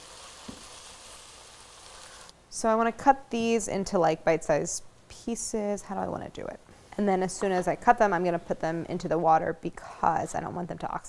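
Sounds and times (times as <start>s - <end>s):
vegetables sizzling in fat: 0.0s - 2.4s.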